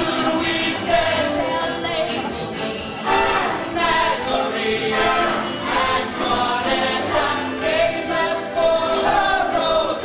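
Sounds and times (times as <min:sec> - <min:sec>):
chorus singing show tune: 0:00.0 - 0:10.0.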